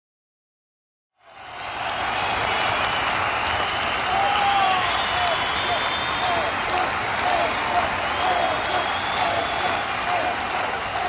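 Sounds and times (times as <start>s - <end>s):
applause: 1.2s - 11.0s.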